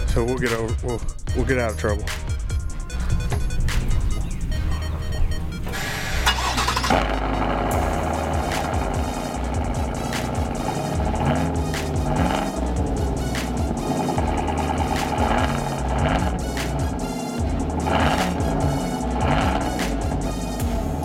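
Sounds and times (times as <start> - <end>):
music: 0.0 - 21.0
truck engine starting and running: 1.7 - 21.0.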